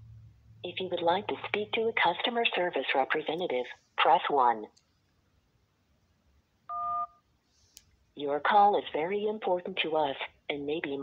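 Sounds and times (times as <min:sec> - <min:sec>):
phone touch-tone beep: 0:06.7 - 0:07.2.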